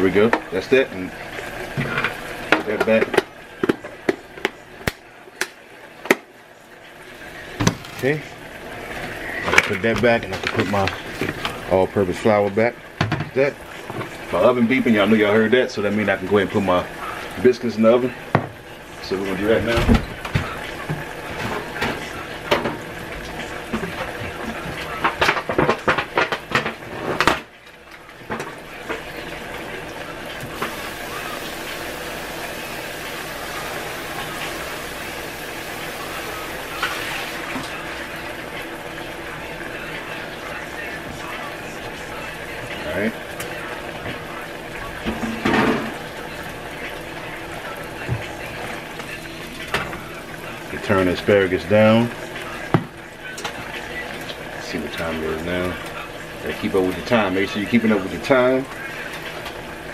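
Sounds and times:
steaks sizzling in oil: 0:00.1 - 0:59.9.

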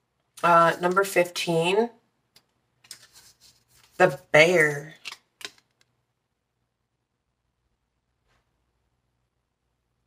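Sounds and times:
booklet pages rustling: 0:02.8 - 0:05.9.

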